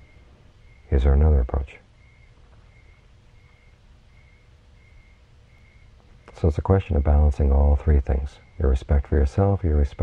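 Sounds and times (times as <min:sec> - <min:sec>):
soft high chirp: 0:00.0 - 0:07.4
faint steady hum: 0:00.0 - 0:10.0.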